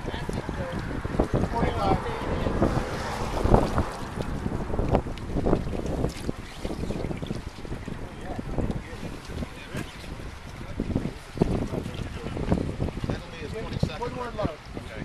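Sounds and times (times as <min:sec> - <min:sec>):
water splashing and sloshing: 0:00.0 - 0:15.0
wind buffeting microphone: 0:00.0 - 0:15.0.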